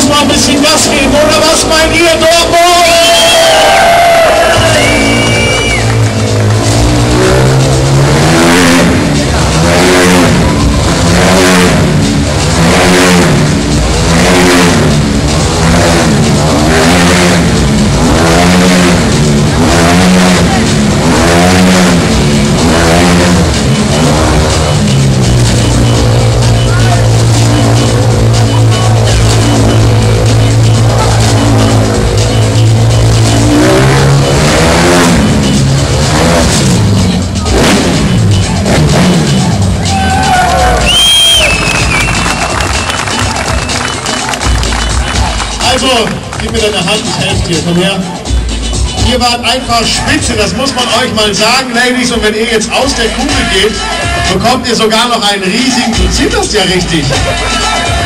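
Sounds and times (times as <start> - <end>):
motorcycle engine revving: 3.6 - 55.2.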